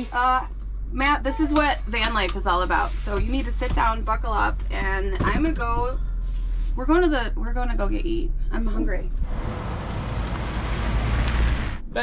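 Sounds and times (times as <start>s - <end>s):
camper van driving by: 7.0s - 12.0s.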